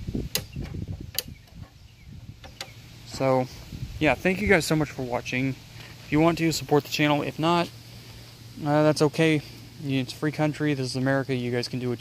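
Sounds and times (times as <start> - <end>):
sharp lever clicks: 0.3 - 1.7, 2.4 - 2.8.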